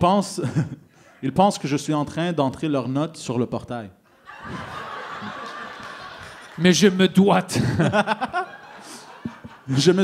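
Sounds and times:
audience laughing: 4.2 - 10.0.

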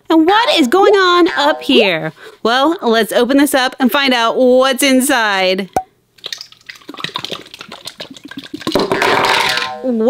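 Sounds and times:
slime squelching and popping: 5.8 - 8.9.

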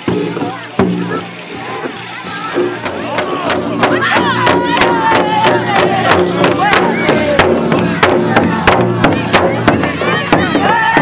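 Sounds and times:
large drum beating: 0.0 - 11.0
children singing in high voices: 0.4 - 11.0.

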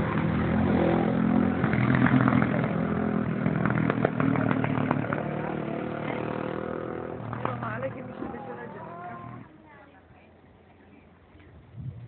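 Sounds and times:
vehicle engine running: 0.0 - 9.6
voices in background: 7.3 - 11.5.

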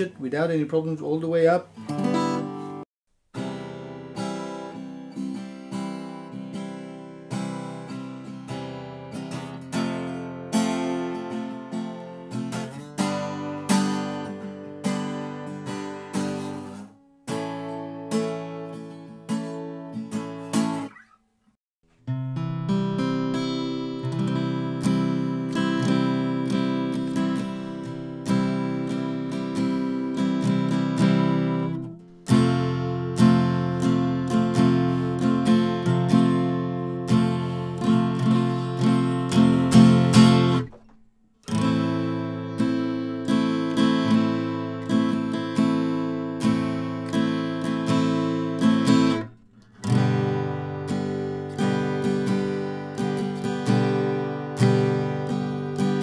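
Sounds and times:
acoustic guitar chords strummed: 1.3 - 21.2, 21.9 - 56.0.

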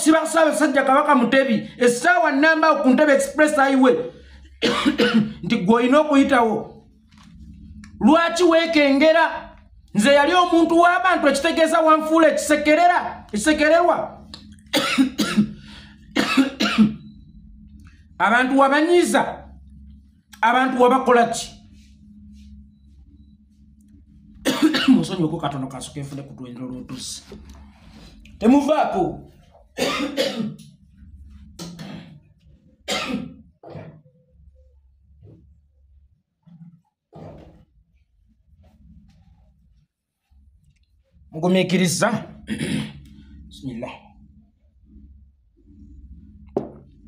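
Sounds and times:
man coughing: 4.5 - 5.5, 14.7 - 17.1, 24.4 - 25.2, 29.8 - 30.7, 32.9 - 34.0, 42.4 - 43.1
man clearing his throat: 4.6 - 5.4, 14.7 - 17.1, 24.4 - 25.1, 29.8 - 30.7, 32.9 - 34.0, 42.5 - 43.1.

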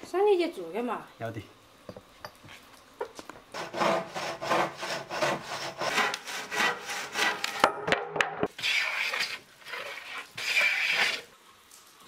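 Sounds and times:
handsaw cutting wood: 3.5 - 7.7, 8.6 - 11.3.

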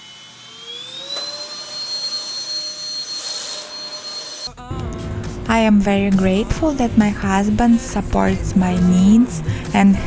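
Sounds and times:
vacuum cleaner motor whine: 0.0 - 4.5
vacuum cleaner click: 1.0 - 1.4.

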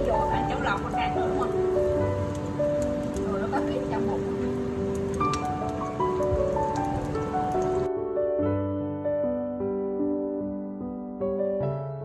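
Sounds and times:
sausages sizzling in hot oil: 0.0 - 7.9
soft melodic background music: 0.0 - 12.0
crackling pops: 4.8 - 7.8.

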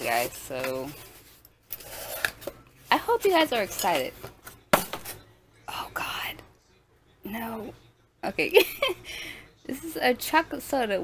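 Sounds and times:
woman whispering: 5.6 - 6.6.

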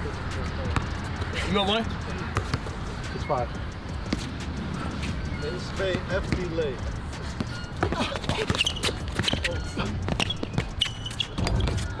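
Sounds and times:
basketball dribbled outdoors: 0.1 - 12.0.

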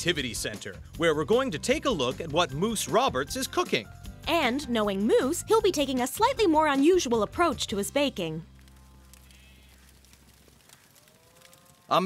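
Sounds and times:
man's voice: 0.0 - 3.9.

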